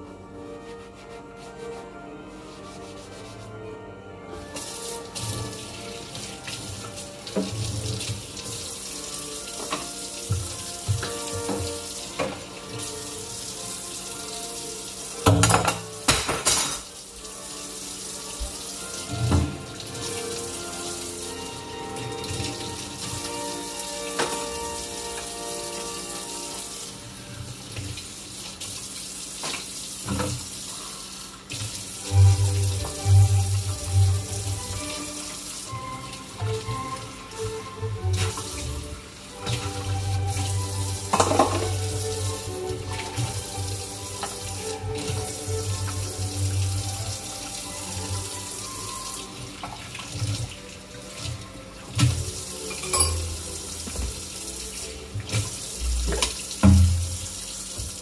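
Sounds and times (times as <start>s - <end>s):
dishes washed by hand: 4.3s - 58.0s
tap running into sink: 4.6s - 8.7s, 9.4s - 12.9s, 15.2s - 16.9s, 18.3s - 20.4s, 24.1s - 25.4s, 29.4s - 30.5s, 38.0s - 47.1s, 51.2s - 54.5s, 55.1s - 58.0s
utensils clinking on dishware: 15.3s - 17.0s, 41.0s - 41.8s, 52.6s - 53.5s.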